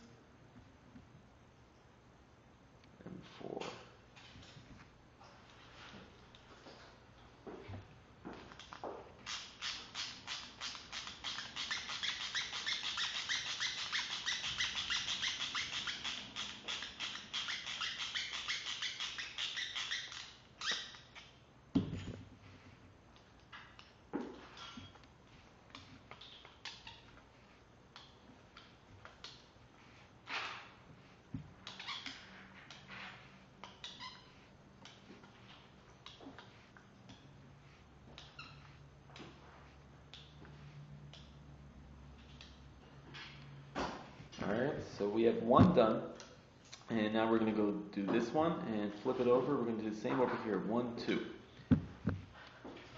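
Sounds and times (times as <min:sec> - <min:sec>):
squeaky clicks of hand tool: 0:08.4 - 0:21.4, 0:23.1 - 0:39.4, 0:40.1 - 0:41.4, 0:42.2 - 0:43.6.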